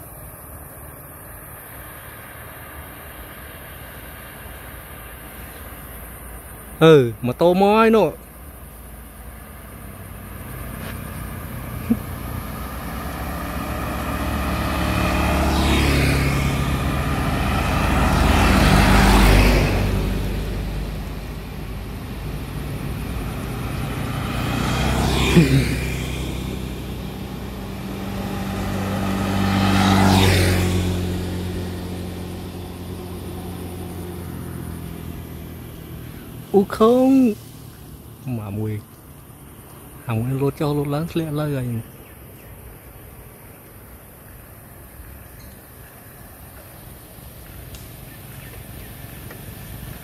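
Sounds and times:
motor scooters driving past: 9.1 - 50.0.

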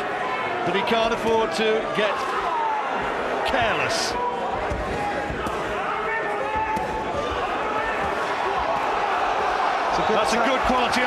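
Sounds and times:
arena crowd noise: 0.0 - 11.0
people shouting: 2.0 - 11.0
punches thudding: 4.4 - 9.4.

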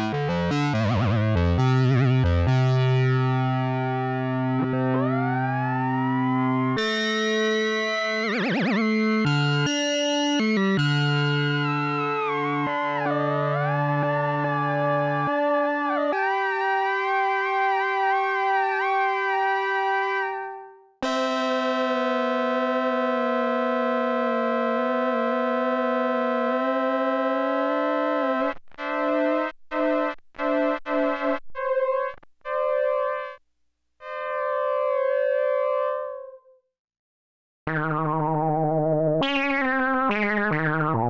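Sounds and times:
buzzy synthesizer notes: 0.0 - 33.4, 34.0 - 36.4
synthesizer held note sweeping: 19.4 - 33.4.

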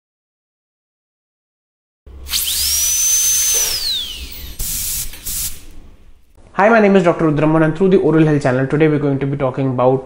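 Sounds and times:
dental drill whining: 2.1 - 6.2
air hiss: 2.2 - 6.2
short hissing bursts: 2.2 - 6.2.

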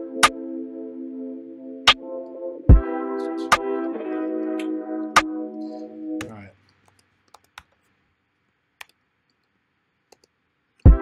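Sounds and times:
music playback: 0.0 - 6.5
mouse and keyboard clicks: 10.1 - 10.4.

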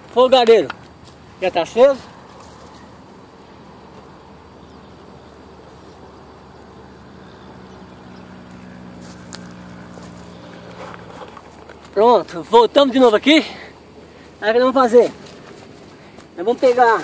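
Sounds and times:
distant motor engine humming: 0.0 - 17.0
outdoor background noise: 0.0 - 17.0.

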